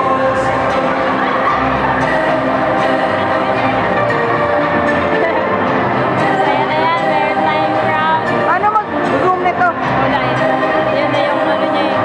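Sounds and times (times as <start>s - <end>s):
music with held notes: 0.0s - 12.0s.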